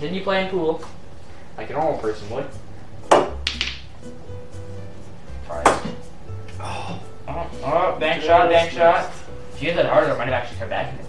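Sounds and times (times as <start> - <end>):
faint background music: 0.0 - 11.0
pool table click: 3.1 - 3.9.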